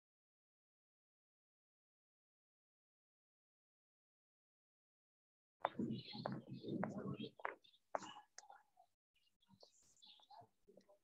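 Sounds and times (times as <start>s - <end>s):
faint murmurs: 5.7s - 11.0s
quiet speech: 5.7s - 11.0s.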